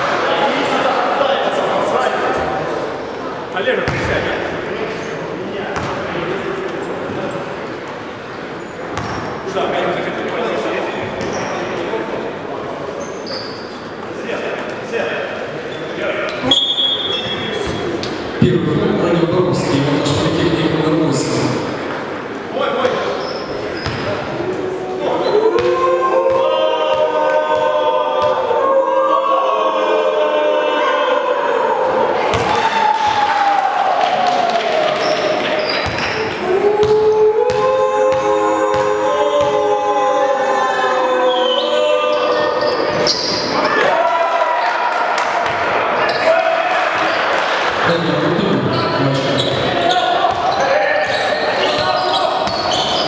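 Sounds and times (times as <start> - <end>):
group of voices chanting: 25.1 - 32.8, 36.4 - 42.9.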